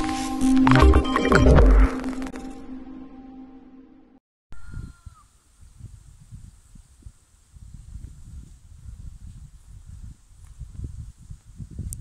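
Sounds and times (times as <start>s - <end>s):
wind buffeting microphone: 4.6s - 12.0s.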